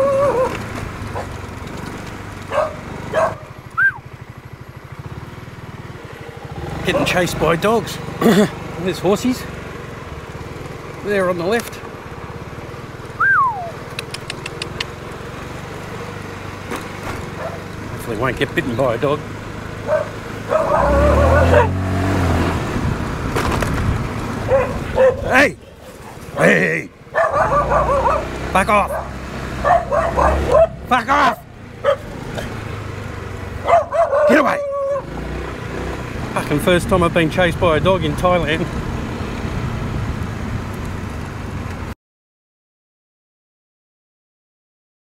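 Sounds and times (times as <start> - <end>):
dog howling: 0.0 - 0.6, 19.9 - 21.8, 27.2 - 28.3, 28.9 - 30.8, 33.6 - 35.1
dogs barking: 0.0 - 1.4, 2.4 - 3.6, 17.2 - 17.8, 19.8 - 21.8, 24.4 - 26.5, 27.1 - 32.6, 33.6 - 35.2
motorcycle engine running: 0.0 - 41.9
wind noise: 22.6 - 25.6.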